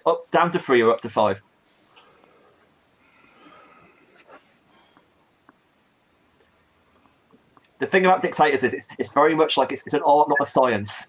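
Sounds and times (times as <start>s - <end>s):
person breathing: 1.7s - 5.2s.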